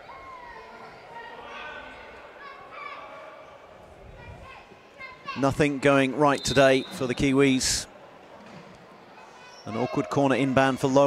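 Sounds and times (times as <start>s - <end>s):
players shouting in sports hall: 0.0s - 3.9s, 9.2s - 11.0s.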